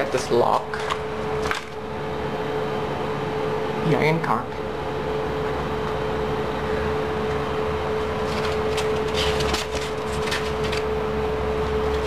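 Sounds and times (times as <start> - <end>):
elevator machinery hum: 0.0 - 12.0.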